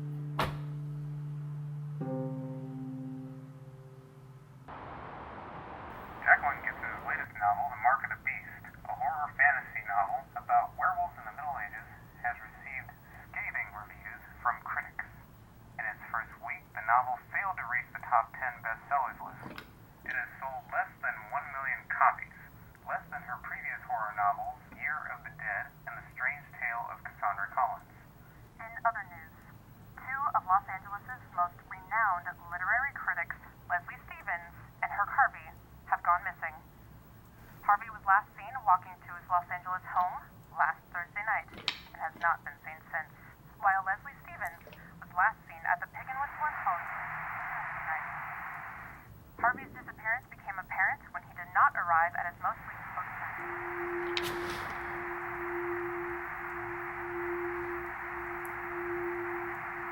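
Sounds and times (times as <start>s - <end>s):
sustained music notes: 0.0s - 7.2s, 53.3s - 59.9s
telephone line hiss: 4.7s - 59.9s
person speaking over telephone: 6.2s - 15.2s, 15.8s - 27.9s, 28.6s - 29.3s, 30.0s - 36.6s, 37.6s - 48.7s, 49.4s - 55.1s.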